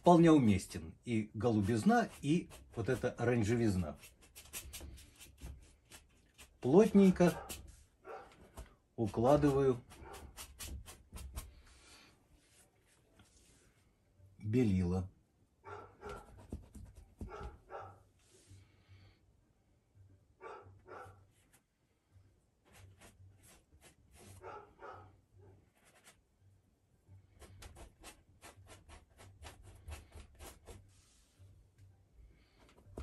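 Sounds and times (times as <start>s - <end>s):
paintbrush scratching on canvas: 1.4s - 11.7s, 16.0s - 17.6s, 22.6s - 24.6s, 25.7s - 26.2s, 27.3s - 31.4s.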